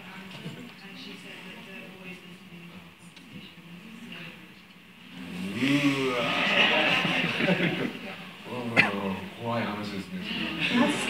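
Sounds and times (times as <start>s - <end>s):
short vocal sounds: 5.0s - 7.3s.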